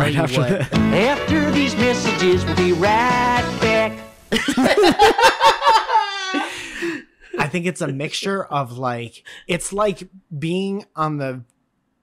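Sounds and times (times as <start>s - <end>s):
men laughing heartily: 4.3s - 7.5s.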